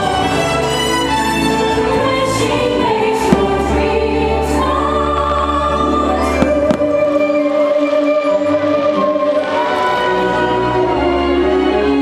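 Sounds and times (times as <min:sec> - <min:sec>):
choral and orchestral music: 0:00.0 - 0:12.0
fireworks bursting with sharp bangs: 0:06.3 - 0:07.2.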